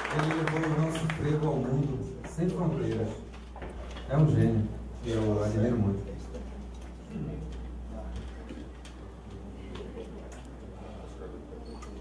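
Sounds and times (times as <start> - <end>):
low electrical hum: 0.0 - 12.0
faint murmuring voices: 1.8 - 12.0.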